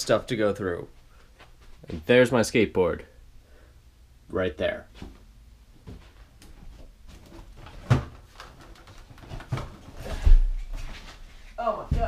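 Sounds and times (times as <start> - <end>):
boxes bumping and scraping: 5.8 - 11.1.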